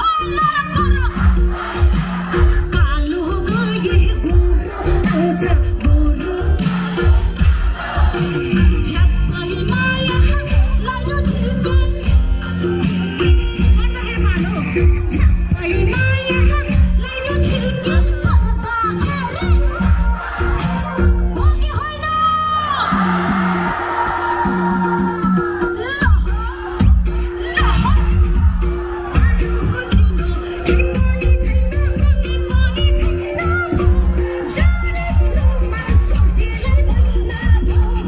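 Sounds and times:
woman singing into a microphone: 0:00.0 - 0:07.8, 0:08.4 - 0:22.9, 0:24.3 - 0:38.0.

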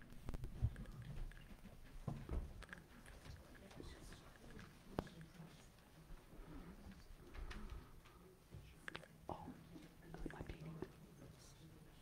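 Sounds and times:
people moving about: 0:00.0 - 0:12.0
people whispering: 0:02.8 - 0:12.0.

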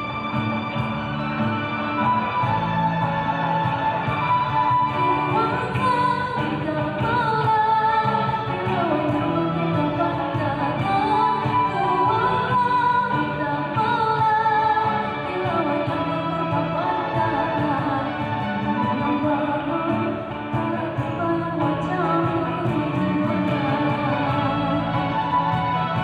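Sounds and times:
live band through speakers: 0:00.0 - 0:26.0
person singing: 0:02.1 - 0:26.0.

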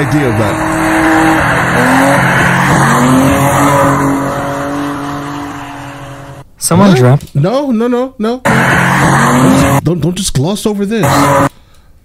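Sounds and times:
truck engine droning at high revs: 0:00.0 - 0:06.4, 0:08.5 - 0:09.8, 0:11.0 - 0:11.5.

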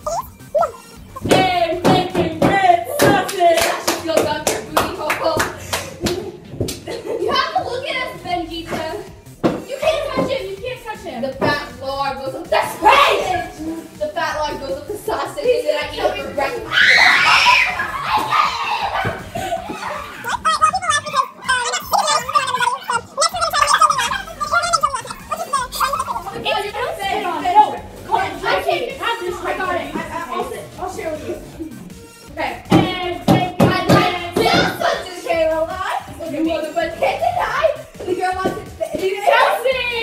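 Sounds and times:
child making gargling noise: 0:00.0 - 0:01.3, 0:20.2 - 0:26.3
children's voices: 0:00.0 - 0:04.1, 0:06.9 - 0:09.1, 0:09.7 - 0:31.4, 0:32.4 - 0:40.0
hands clapping: 0:01.2 - 0:06.9, 0:20.3 - 0:26.1.

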